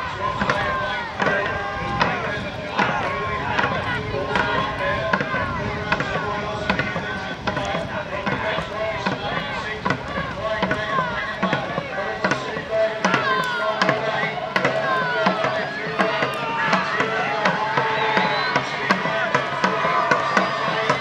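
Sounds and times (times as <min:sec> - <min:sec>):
crowd shouting and cheering: 0:00.0 - 0:21.0
drum beating steadily: 0:00.0 - 0:21.0.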